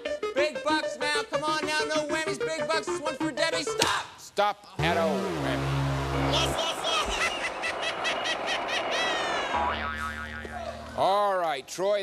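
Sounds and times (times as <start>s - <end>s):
low steady tones: 4.8s - 6.6s.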